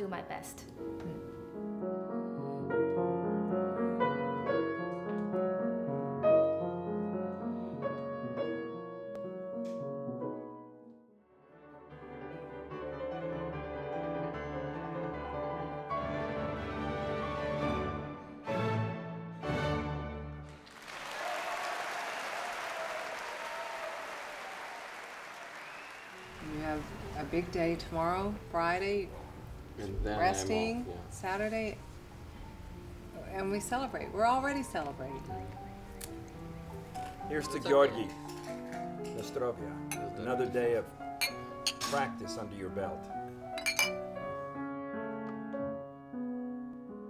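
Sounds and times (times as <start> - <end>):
background music: 0.0 - 21.5, 25.0 - 47.0
audience applauding: 20.4 - 27.2
glasses clinking: 39.9 - 40.2, 41.2 - 42.1, 43.6 - 44.1.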